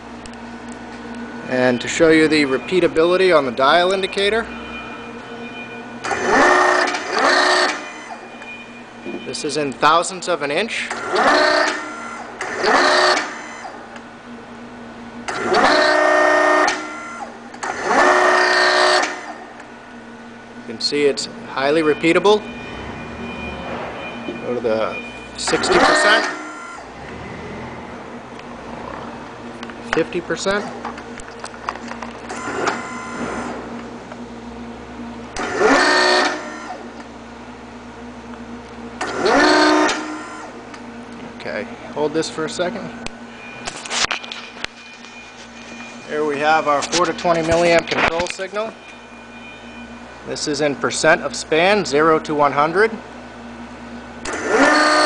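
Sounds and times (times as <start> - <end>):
actuator motor and pump whining: 0.0 - 55.0.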